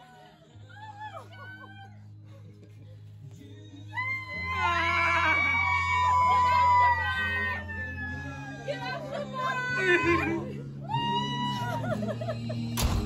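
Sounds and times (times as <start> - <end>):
background music with bass: 0.0 - 13.0
people screaming excitedly: 3.9 - 12.1.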